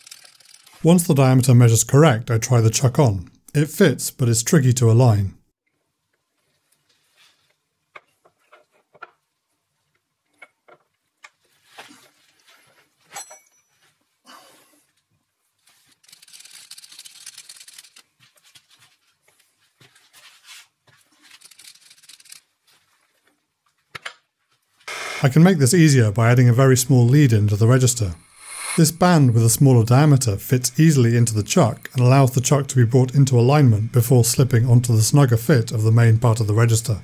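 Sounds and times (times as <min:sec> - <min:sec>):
metal scraping and rubbing: 0:27.6 - 0:32.0.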